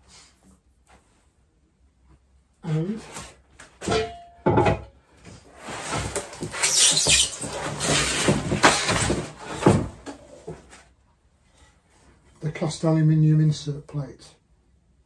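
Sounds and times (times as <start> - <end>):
rustling and scraping of packing: 5.2 - 11.0.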